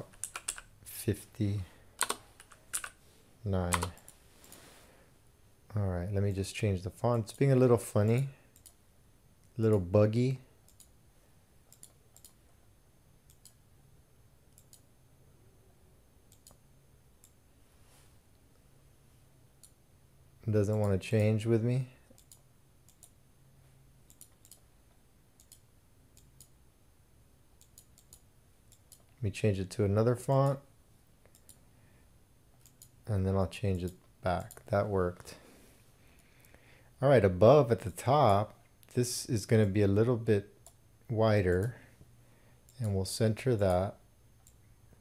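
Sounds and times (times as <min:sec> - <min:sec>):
computer mouse clicks: 0:02.0 - 0:03.0, 0:08.1 - 0:08.8, 0:10.6 - 0:11.0, 0:11.7 - 0:12.4, 0:13.3 - 0:13.6, 0:14.5 - 0:14.9, 0:16.3 - 0:16.6, 0:22.0 - 0:23.2, 0:24.1 - 0:24.7, 0:25.4 - 0:26.6, 0:27.6 - 0:29.2, 0:31.2 - 0:31.6, 0:32.5 - 0:33.0
faint computer mouse clicks: 0:11.7 - 0:12.4, 0:13.3 - 0:13.6, 0:14.5 - 0:14.9, 0:16.3 - 0:16.6.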